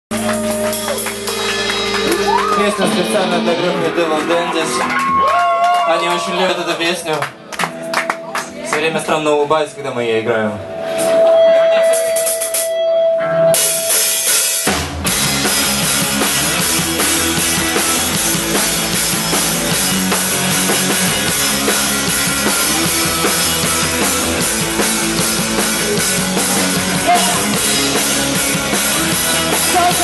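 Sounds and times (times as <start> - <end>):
live rock band playing: 0.1 - 30.0.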